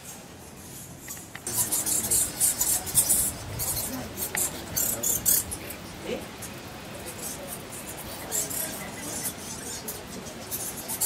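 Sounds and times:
bats squeaking and chittering: 0:01.0 - 0:11.0.

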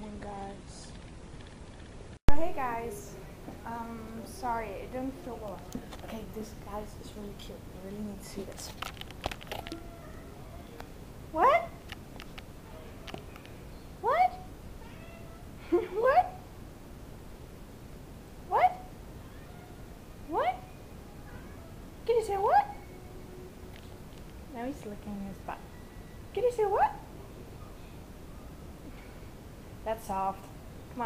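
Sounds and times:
cat meowing: 0:09.5 - 0:10.8, 0:14.8 - 0:15.6, 0:19.2 - 0:20.0, 0:20.6 - 0:21.9.

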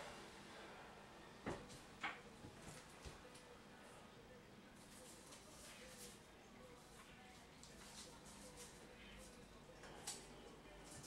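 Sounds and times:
low steady hum and hiss: 0:00.0 - 0:11.0.

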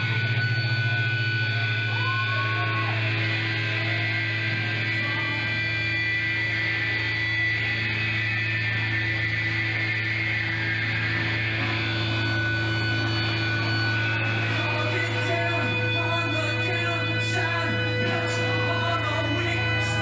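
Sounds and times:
amplifier electric hum: 0:00.0 - 0:20.0
noisy room haze: 0:00.0 - 0:20.0
sustained high tones: 0:00.0 - 0:20.0.

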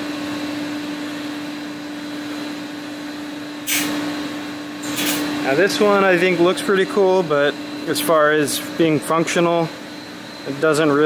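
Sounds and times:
fan-like hum: 0:00.0 - 0:11.0.

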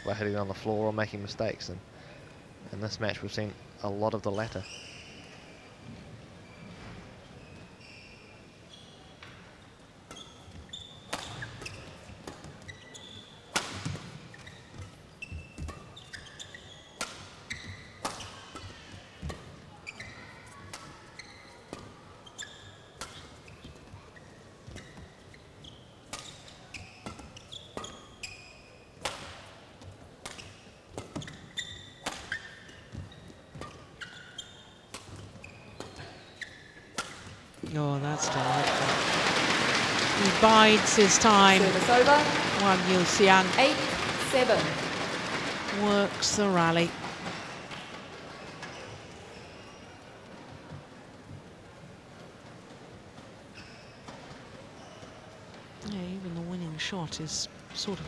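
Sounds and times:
shoes squeaking on court: 0:04.3 - 0:37.8, 0:39.7 - 0:56.2
crowd applause: 0:38.0 - 0:48.3.

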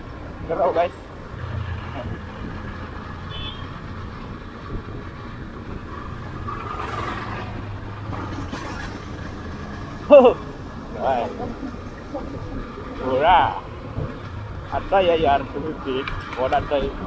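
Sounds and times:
motorcycle engine cruising: 0:00.0 - 0:17.0
tractor passing: 0:00.0 - 0:17.0
wind and road noise: 0:00.0 - 0:17.0.

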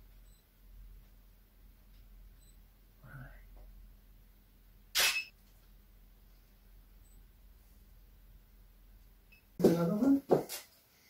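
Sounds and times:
camera shutter click: 0:05.0 - 0:05.3.

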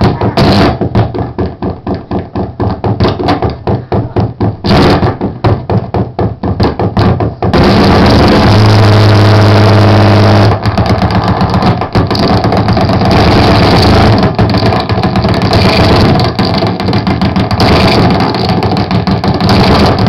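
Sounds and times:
distorted electronic noise music: 0:00.0 - 0:01.4, 0:04.6 - 0:05.4, 0:07.0 - 0:20.0.

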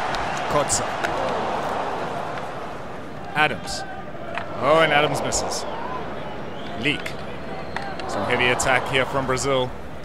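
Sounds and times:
crowd background noise: 0:00.0 - 0:10.0.

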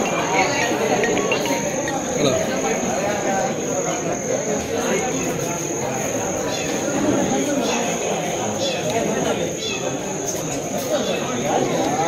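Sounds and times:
steady high-pitched tone: 0:00.0 - 0:03.2
murmur of voices: 0:00.0 - 0:12.0.

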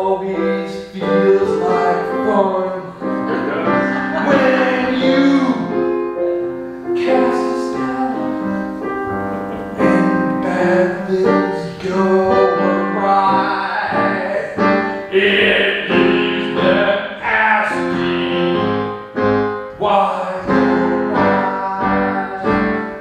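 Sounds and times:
piano accompaniment: 0:00.0 - 0:23.0.

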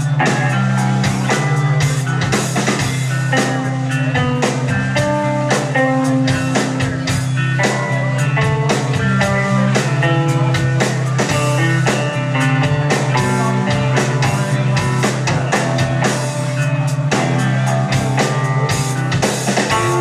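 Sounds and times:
drum kit hits: 0:00.0 - 0:20.0
low bass line: 0:00.0 - 0:20.0
picked bass melody: 0:00.0 - 0:20.0.

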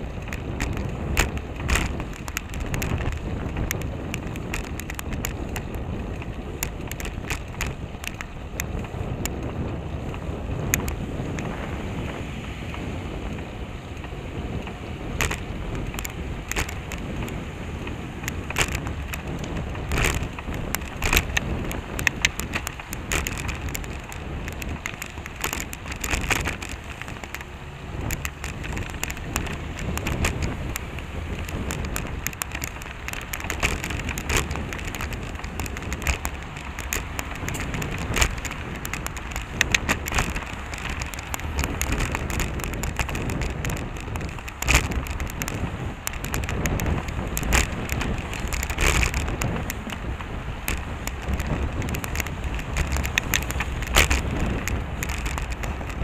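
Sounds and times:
bicycle rattles and knocks: 0:00.0 - 0:56.0
car traffic: 0:00.0 - 0:56.0
wind rushing on microphone: 0:00.0 - 0:56.0.

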